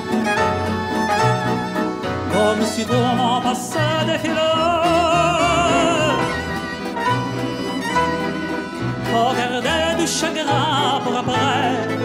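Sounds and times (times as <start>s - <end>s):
bass line: 0.0s - 12.0s
grand piano: 0.0s - 12.0s
orchestra playing: 0.0s - 12.0s
violins: 0.0s - 12.0s.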